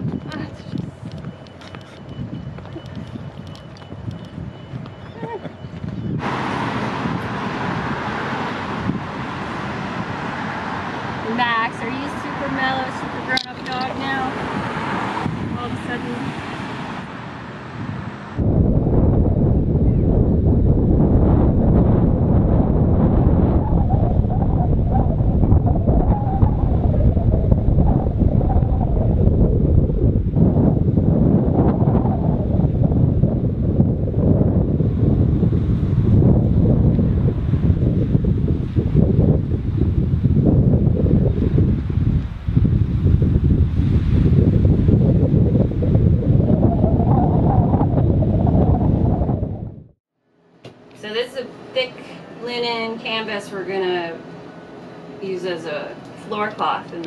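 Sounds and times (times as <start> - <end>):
wind buffeting microphone: 0.0 - 50.0.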